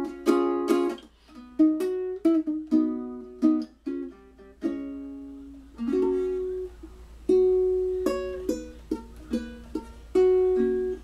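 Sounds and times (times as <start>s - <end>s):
ukulele chords: 0.0s - 11.0s.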